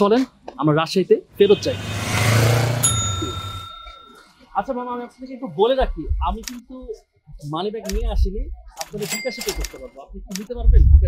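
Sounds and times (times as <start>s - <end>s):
bicycle bell ringing: 1.8s - 4.6s.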